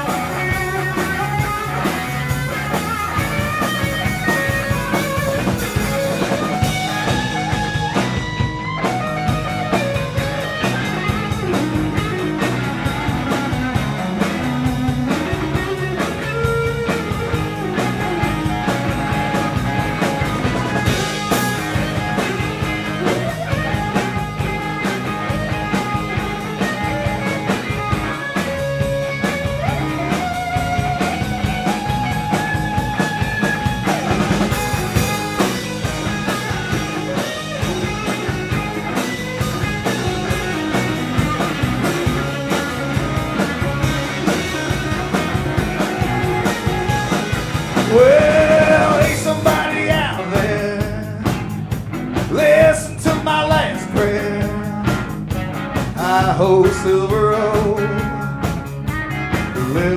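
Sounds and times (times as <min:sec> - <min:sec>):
drum kit beat: 0:00.0 - 0:59.9
electric guitars: 0:00.0 - 0:59.9.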